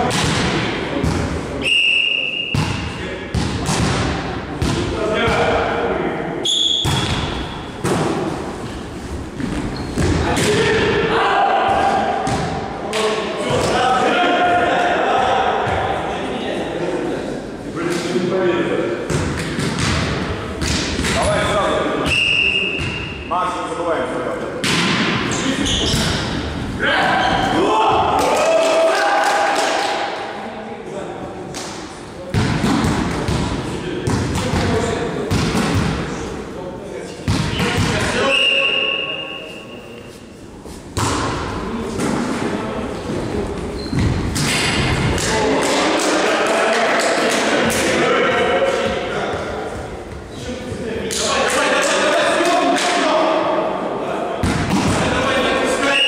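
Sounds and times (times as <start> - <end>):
volleyball struck by hands: 6.8 - 8.2, 41.0 - 42.2.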